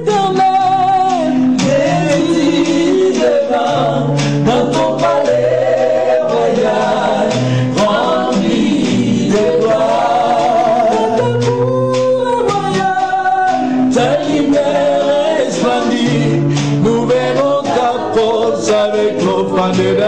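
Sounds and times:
acoustic guitar: 0.0s - 20.0s
backing voices singing: 0.0s - 20.0s
woman singing gospel song: 0.0s - 20.0s.

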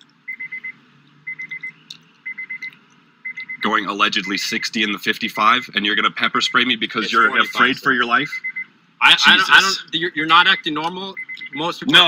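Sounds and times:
car warning chime beeping: 0.3s - 12.0s.

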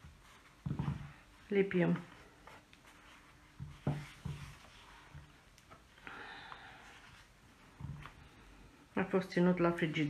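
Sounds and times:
hands pressing fondant: 0.0s - 5.9s.

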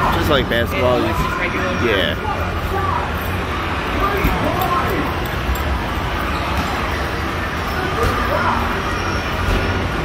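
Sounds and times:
low hum of game machines: 0.0s - 10.0s.

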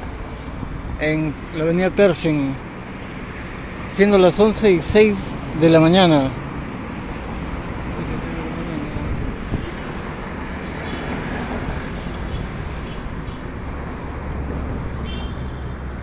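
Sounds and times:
passing cars and motorcycles: 0.0s - 16.0s.

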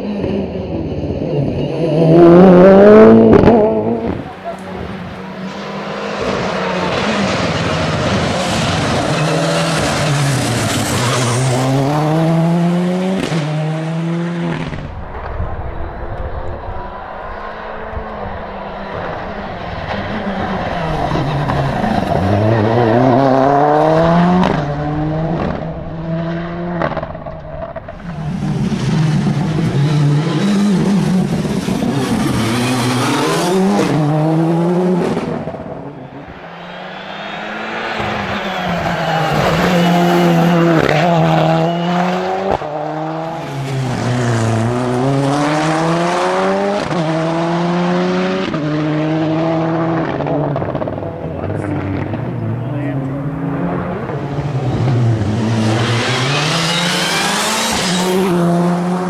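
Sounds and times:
rally car engine revving: 0.0s - 59.0s.

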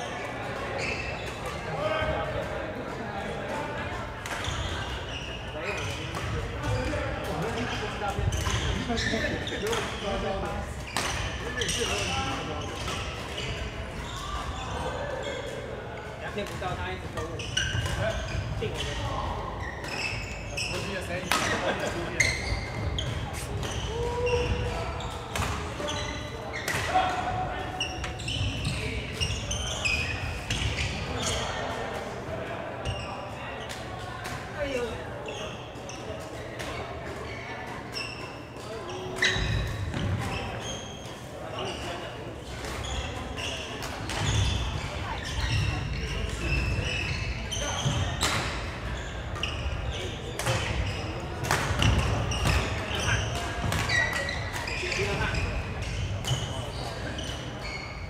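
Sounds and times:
players talking: 0.0s - 58.0s
rackets hitting shuttlecock: 50.2s - 55.2s.

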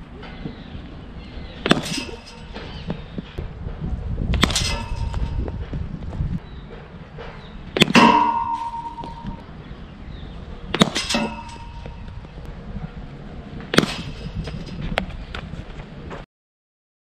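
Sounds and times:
metallic ring: 7.9s - 9.5s, 11.0s - 12.1s.

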